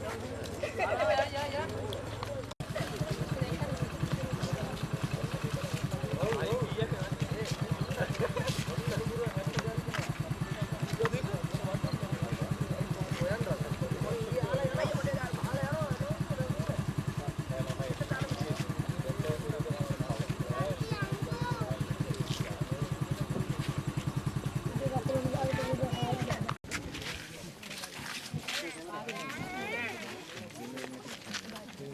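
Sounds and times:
people talking: 0:00.0 - 0:31.9
small engine idling: 0:01.4 - 0:26.6.

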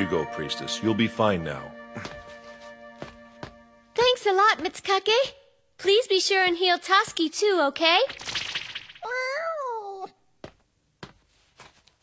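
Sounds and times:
cartoon cat meowing: 0:09.0 - 0:10.2.

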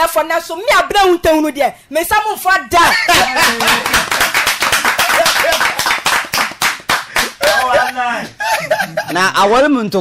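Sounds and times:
hand clapping: 0:03.2 - 0:07.8
person speaking: 0:07.2 - 0:10.0.

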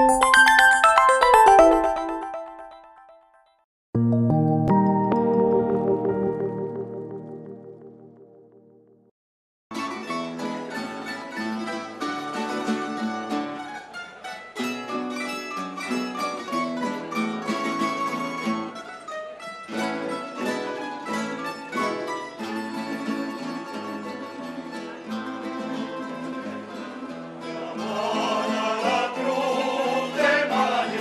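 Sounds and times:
plucked string instrumental music: 0:04.0 - 0:08.7, 0:09.7 - 0:31.0.

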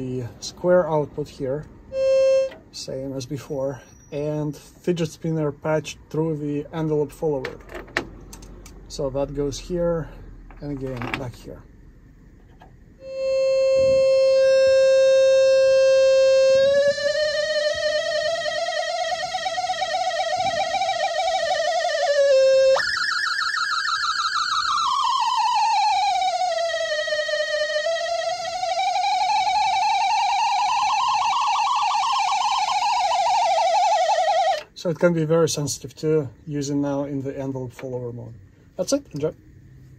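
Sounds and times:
buzzy synthesizer square wave: 0:13.0 - 0:34.6.

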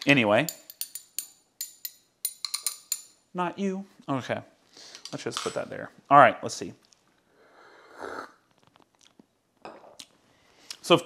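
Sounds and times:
short breath: 0:04.7 - 0:05.1
man slurping espresso: 0:07.7 - 0:08.8.

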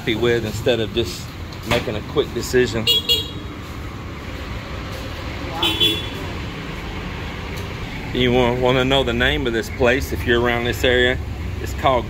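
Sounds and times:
street traffic rumble: 0:00.0 - 0:12.0
vehicle horn toot: 0:02.8 - 0:03.4, 0:05.6 - 0:06.2.

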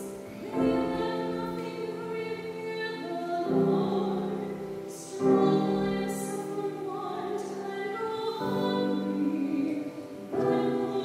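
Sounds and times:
piano accompaniment: 0:00.0 - 0:11.0
soprano singing: 0:00.0 - 0:11.0.

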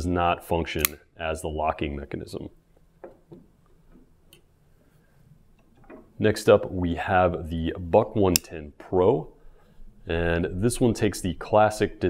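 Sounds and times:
quiet room hum: 0:00.0 - 0:12.0.

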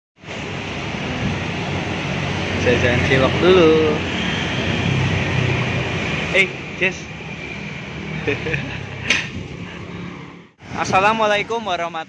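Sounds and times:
vehicle engine humming: 0:00.2 - 0:10.7.

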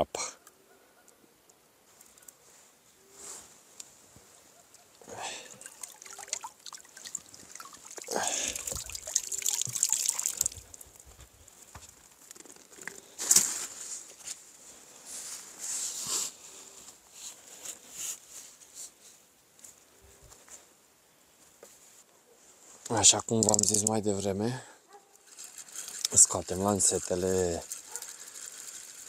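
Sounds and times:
water splashing and trickling: 0:04.8 - 0:12.2, 0:23.0 - 0:24.1, 0:25.2 - 0:29.0
water pouring rush: 0:05.1 - 0:11.0, 0:23.4 - 0:23.9, 0:25.3 - 0:29.0.

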